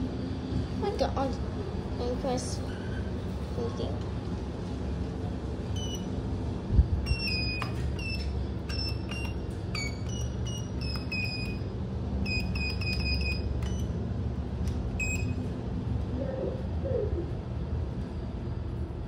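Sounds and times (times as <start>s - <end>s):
steady low hum: 0.0s - 19.0s
lift button beeps: 5.8s - 6.1s, 7.0s - 11.6s, 12.2s - 13.9s, 15.0s - 15.4s.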